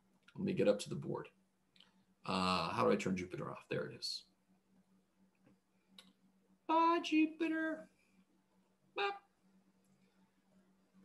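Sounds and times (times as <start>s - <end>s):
faint steady hum: 0.0s - 11.0s
man saying bye: 6.7s - 7.8s, 9.0s - 9.3s.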